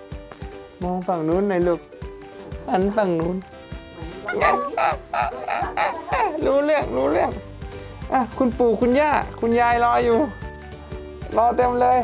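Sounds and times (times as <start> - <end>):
baby crying: 4.3 - 6.6.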